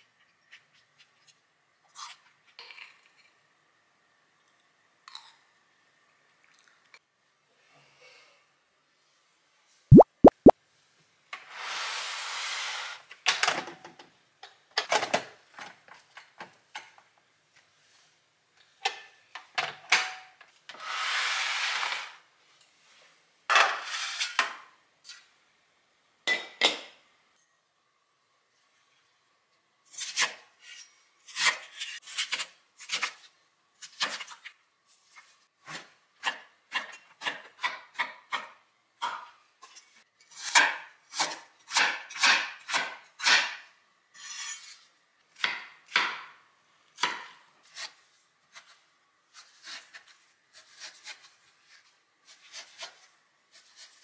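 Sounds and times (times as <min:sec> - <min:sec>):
knife chopping on wooden board: 0:47.0 - 0:47.9.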